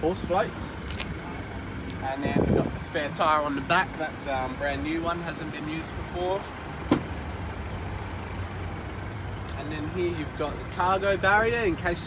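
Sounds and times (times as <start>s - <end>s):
motor vehicle rumbling: 0.0s - 12.0s.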